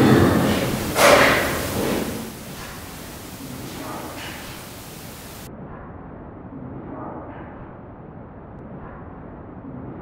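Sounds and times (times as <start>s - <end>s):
low rumble: 0.0s - 4.0s
steady hiss: 0.0s - 5.5s.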